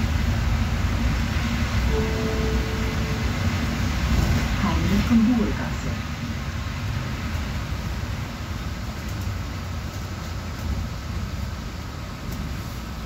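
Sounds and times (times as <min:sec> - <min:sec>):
bus engine and road rumble: 0:00.0 - 0:13.0.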